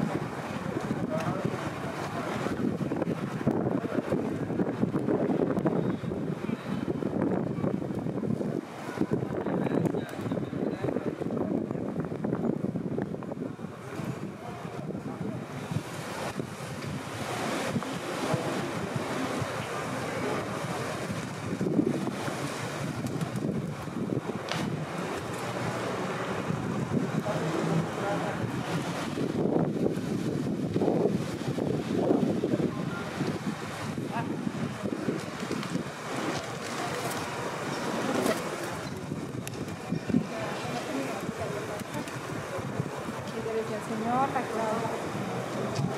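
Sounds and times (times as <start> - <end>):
traffic noise: 0.0 - 45.9
voices of passers-by: 0.0 - 45.9
wind on microphone: 0.0 - 45.9.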